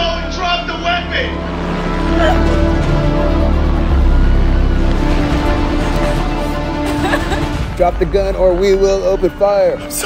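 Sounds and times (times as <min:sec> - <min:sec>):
woman crying out in distress: 0:02.1 - 0:02.7.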